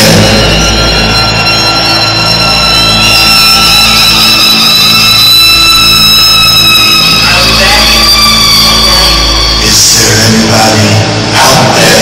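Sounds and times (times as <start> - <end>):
loud rock concert music: 0.0 - 12.0.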